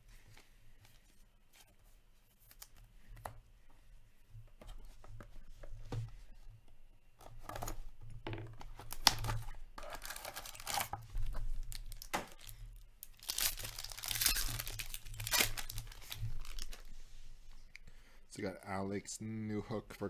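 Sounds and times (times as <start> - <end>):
card pack wrapper tearing and crinkling: 8.8 - 16.9.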